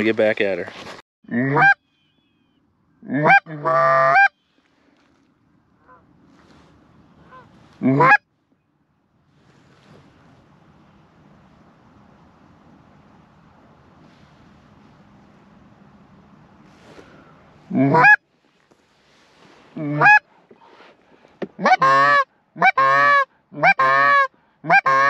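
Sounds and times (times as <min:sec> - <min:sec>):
goose call honks: 0:01.3 - 0:01.8, 0:03.0 - 0:04.4, 0:07.2 - 0:08.2, 0:17.7 - 0:18.2, 0:19.8 - 0:20.3, 0:21.6 - 0:25.0
faint rushing noise: 0:08.5 - 0:21.4.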